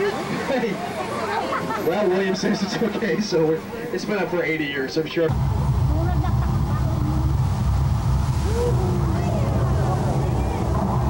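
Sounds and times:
water rushing down a slope: 0.0s - 4.4s, 5.3s - 11.0s
faint voices: 0.0s - 7.5s, 8.4s - 11.0s.

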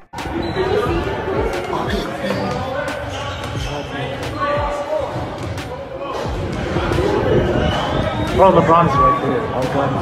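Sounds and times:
voices talking: 0.2s - 10.0s.

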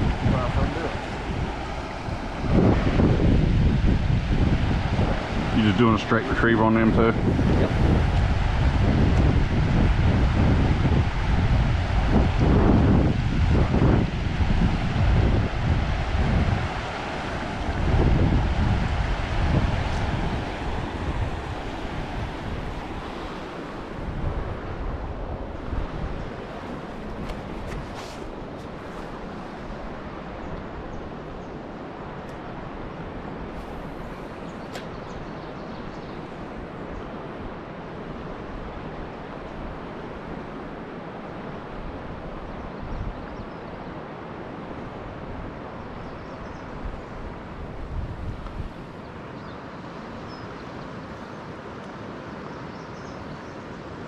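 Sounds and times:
river running over rocks: 0.0s - 42.6s
wind buffeting microphone: 0.0s - 43.8s, 44.6s - 49.5s.

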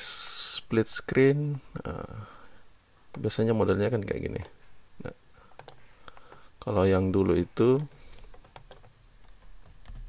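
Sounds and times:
faint low hum: 0.0s - 10.0s
computer keyboard keystrokes: 5.6s - 6.9s, 7.8s - 10.0s.

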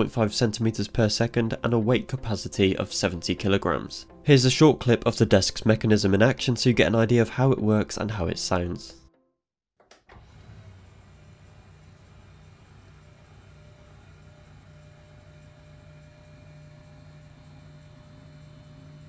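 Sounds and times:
desk motor humming rumble: 10.2s - 19.0s.

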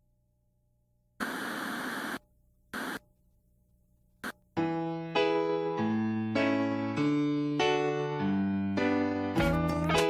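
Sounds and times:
television static hiss: 1.2s - 3.1s.

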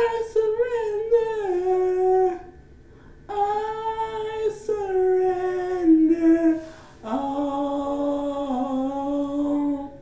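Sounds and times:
woman singing unaccompanied: 0.0s - 2.6s, 3.3s - 10.0s.

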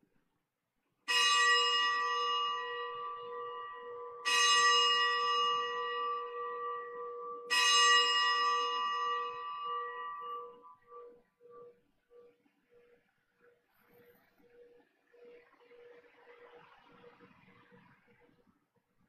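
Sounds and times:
bell ringing: 1.1s - 11.8s.

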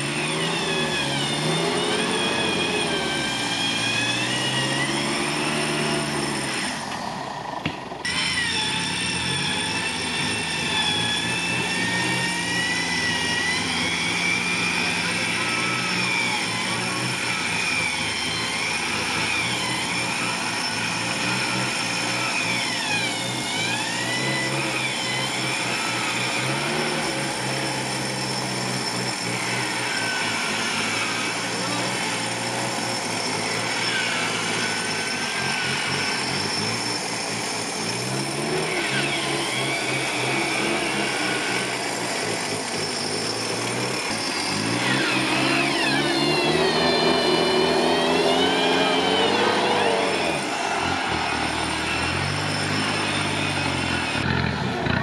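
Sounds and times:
engine running under load: 0.0s - 55.0s
voices calling out: 38.2s - 55.0s.

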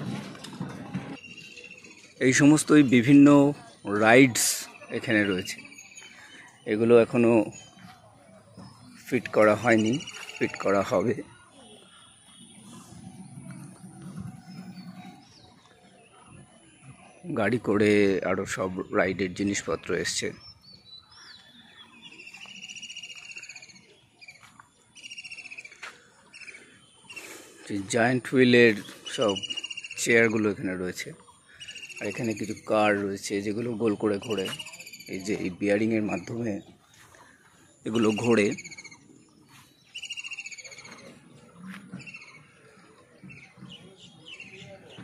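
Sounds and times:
songbird trilling and chirping: 1.2s - 2.9s, 4.6s - 10.6s, 20.4s - 27.2s, 28.8s - 33.0s, 33.7s - 37.0s, 37.7s - 45.0s
bird trilling: 29.1s - 30.5s, 34.1s - 35.5s, 38.0s - 39.2s, 39.8s - 42.6s.

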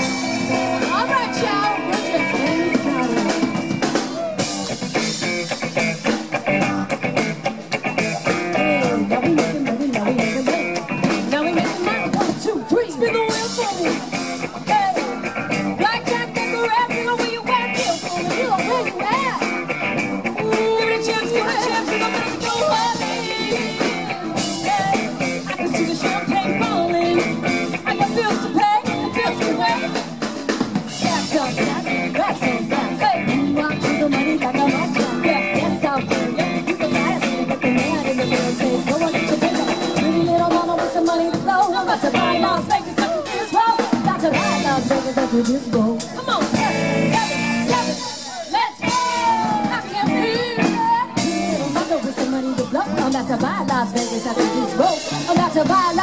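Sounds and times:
live band playing: 0.0s - 56.0s
steady drum beat: 0.0s - 56.0s.

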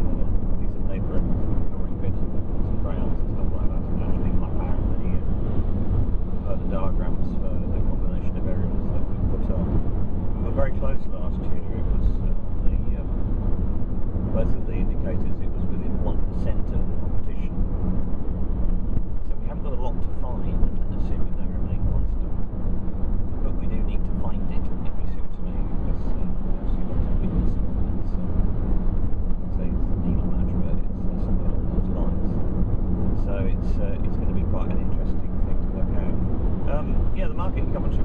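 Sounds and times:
car road and engine noise: 0.0s - 38.0s
low hum: 0.0s - 38.0s.

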